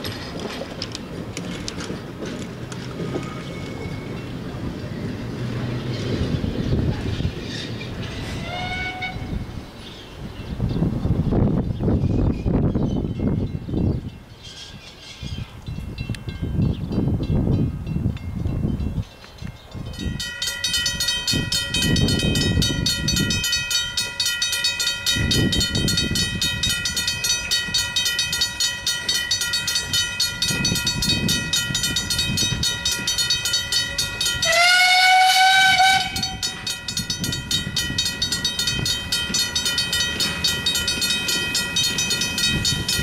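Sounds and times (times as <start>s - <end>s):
locomotive working: 0.0s - 10.6s, 19.2s - 43.0s
wind rumbling on microphone: 0.0s - 43.0s
steam locomotive whistle: 8.3s - 9.4s, 34.4s - 36.7s
level crossing alarm bell: 20.0s - 43.0s.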